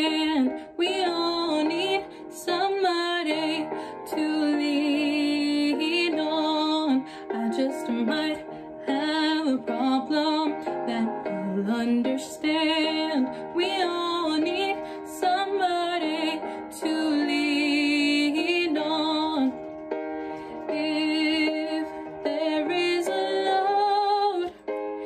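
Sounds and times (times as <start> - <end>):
woman singing slow song: 0.0 - 19.6, 20.6 - 24.6.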